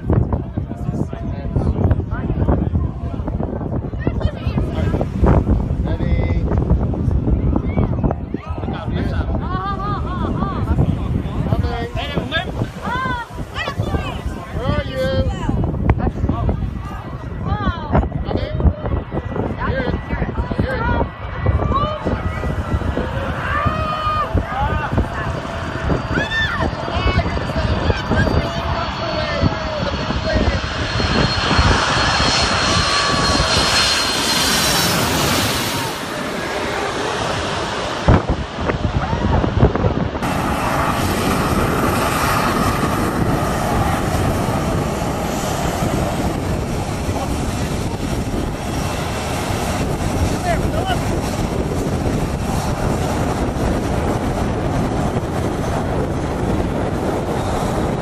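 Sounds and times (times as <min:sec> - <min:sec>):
jet airliner passing overhead: 0:00.0 - 0:58.0
jet engines at takeoff power: 0:00.0 - 0:58.0.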